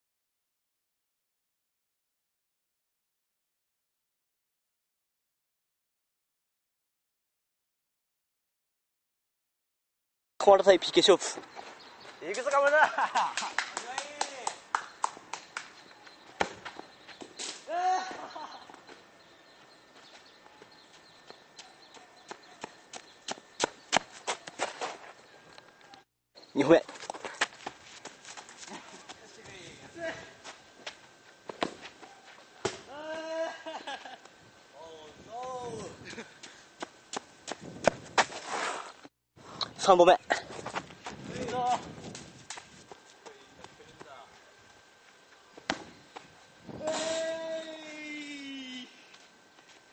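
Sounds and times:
man shouting: 17.7 - 18.3, 46.8 - 49.0
footsteps on gravelly dirt: 26.6 - 32.5, 36.3 - 39.0, 40.4 - 44.5.

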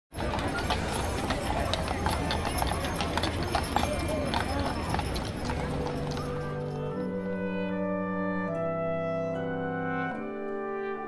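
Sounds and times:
horse hooves clip-clopping on pavement: 0.1 - 7.0
crowd chatter: 0.1 - 10.2
music: 0.1 - 11.0.

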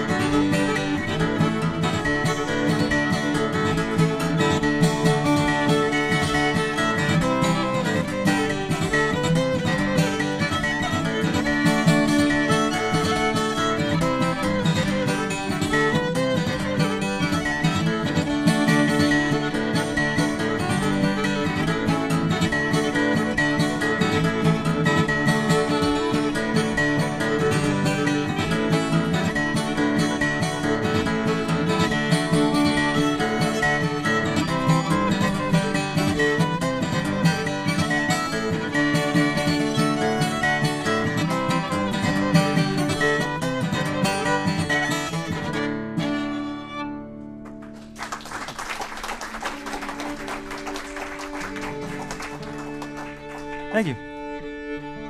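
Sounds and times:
acoustic guitar strumming: 0.0 - 48.0, 49.4 - 55.0
fiddle melody: 0.0 - 55.0.

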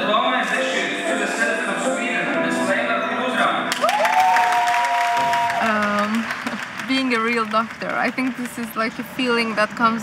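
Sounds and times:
music holding a chord: 0.0 - 3.7
audience applauding: 3.7 - 10.0.

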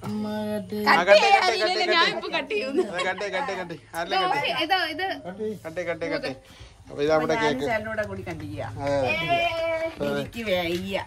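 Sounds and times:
people's voices: 7.2 - 11.0.

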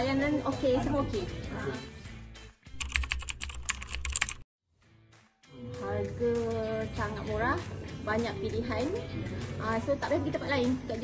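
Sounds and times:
keyboard typing clicks: 2.8 - 4.4.

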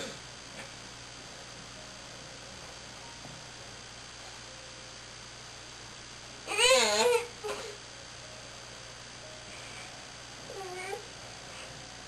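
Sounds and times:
baby crying: 6.5 - 7.7.

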